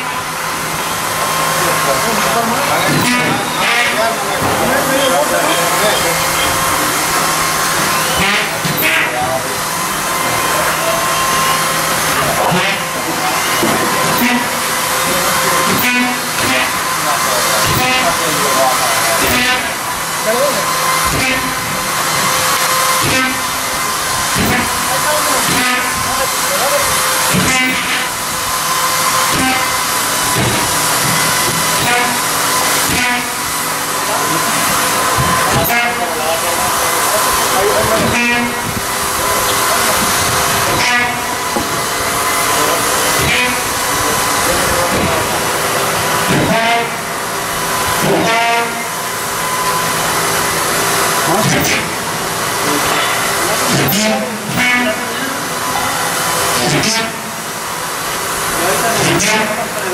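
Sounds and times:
indistinct voices: 0.0s - 59.9s
loud steady hissing: 0.0s - 59.9s.

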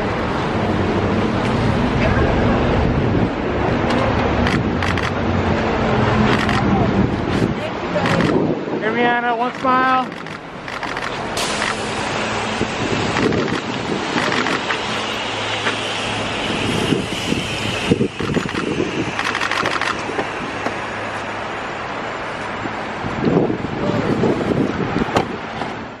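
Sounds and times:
traffic on wet pavement: 0.0s - 26.0s
wind buffeting microphone: 0.6s - 20.9s, 22.5s - 25.9s.

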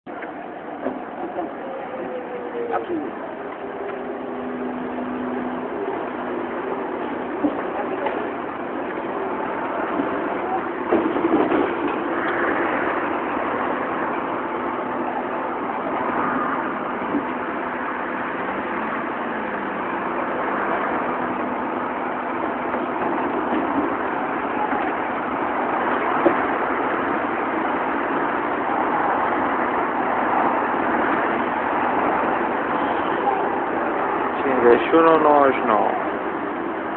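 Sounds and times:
city traffic noise: 0.1s - 36.9s
trolleybus pulling away: 0.1s - 36.9s.

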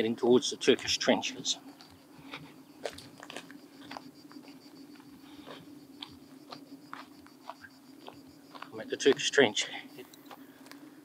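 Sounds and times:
steady low hum: 0.0s - 11.0s
footsteps crunching on dry ground: 0.6s - 10.9s.

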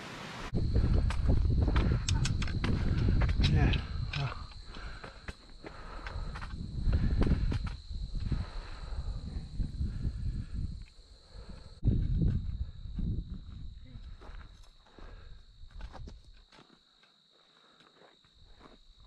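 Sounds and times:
steady high whine: 0.0s - 8.9s
wind buffeting microphone: 0.5s - 16.3s.

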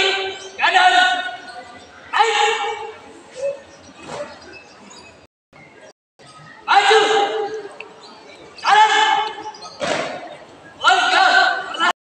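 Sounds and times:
loud shout: 2.1s - 2.9s, 6.6s - 7.7s, 8.6s - 9.4s, 10.8s - 11.9s
sharp thump: 9.8s - 10.3s.

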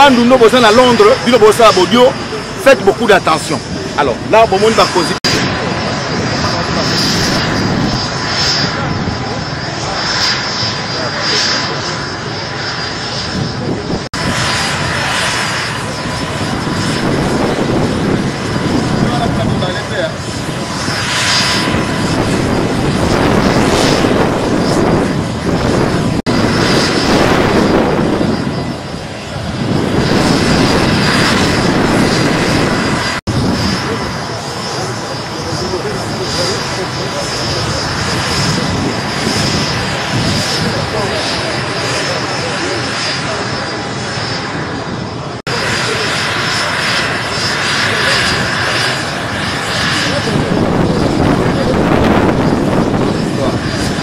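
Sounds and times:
people's voices: 0.0s - 7.6s
helicopter turbine and rotor: 0.0s - 54.0s.

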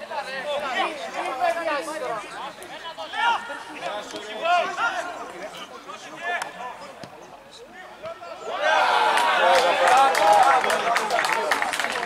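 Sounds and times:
people shouting and calling out: 0.0s - 11.0s.

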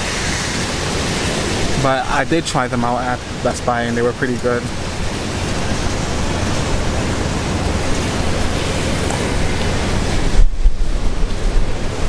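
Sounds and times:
rain on umbrella: 0.0s - 12.0s
wind buffeting microphone: 0.0s - 12.0s.

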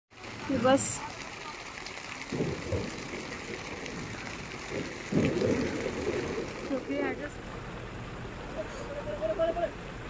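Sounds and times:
stream running over rocks: 0.1s - 10.0s
low rumbles: 2.0s - 10.0s.

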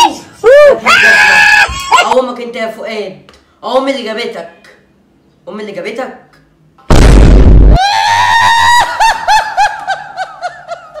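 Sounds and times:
loud burst of noise: 6.9s - 8.5s.

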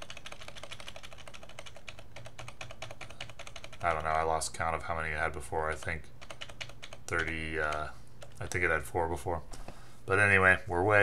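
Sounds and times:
computer keyboard clicking: 0.0s - 4.2s, 5.2s - 8.6s
low steady hum: 0.0s - 11.0s.

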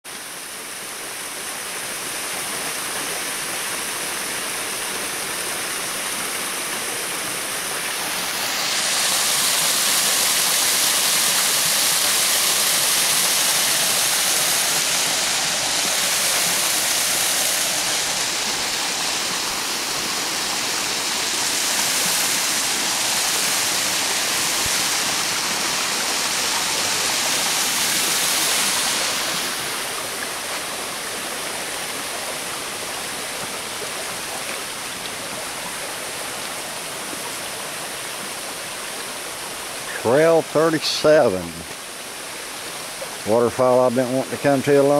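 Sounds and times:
creek water rushing over rocks: 0.1s - 44.9s.

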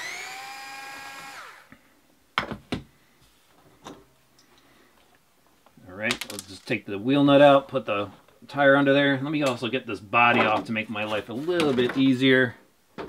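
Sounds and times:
power driver whining: 0.0s - 1.7s.

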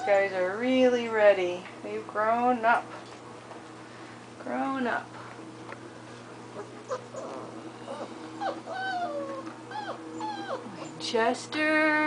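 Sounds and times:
puppies whimpering: 0.0s - 0.4s, 6.5s - 11.1s.

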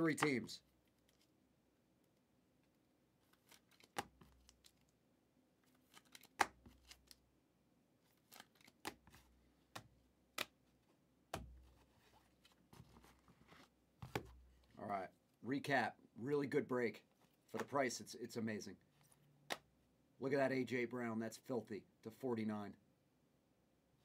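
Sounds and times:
trading cards clicking and tapping: 0.0s - 0.5s.

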